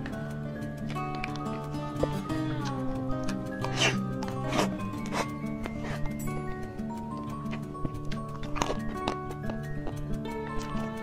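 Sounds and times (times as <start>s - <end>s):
background music with held notes: 0.0s - 11.0s
mouth eating sounds: 0.9s - 11.0s.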